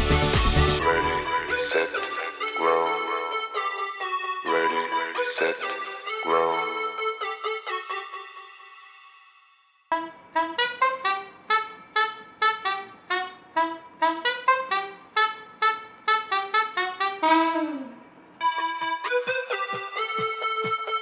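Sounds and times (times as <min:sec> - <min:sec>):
held musical note: 0:00.0 - 0:07.2.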